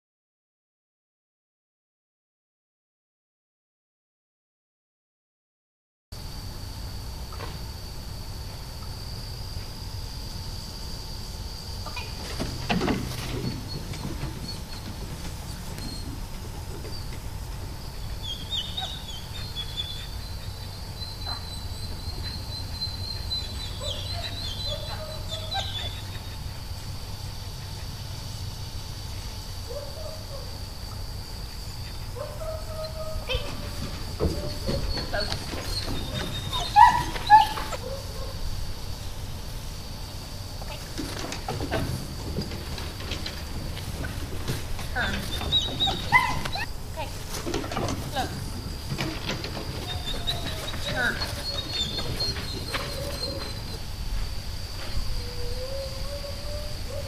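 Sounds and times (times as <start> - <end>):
high-pitched insect drone: 6.2 - 42.2
bird calls: 17.9 - 26.9, 31.5 - 38.3, 42.8 - 46.8, 47.7 - 53.9.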